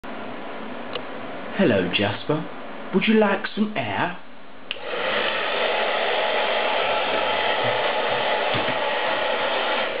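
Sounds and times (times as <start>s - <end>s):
hair dryer blowing air: 4.7s - 10.0s.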